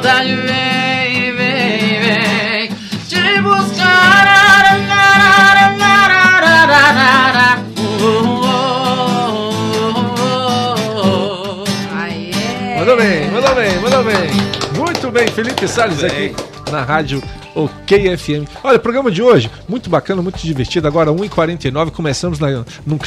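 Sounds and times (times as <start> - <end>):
man singing: 0.0 - 13.9
acoustic guitar: 0.0 - 23.0.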